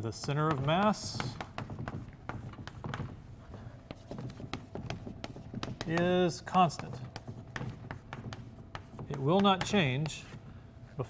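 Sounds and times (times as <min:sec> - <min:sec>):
chalk writing on a blackboard: 0:00.1 - 0:10.5.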